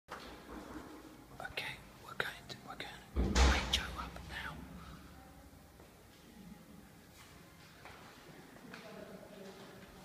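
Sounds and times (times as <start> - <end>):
man whispering: 1.3 - 4.9.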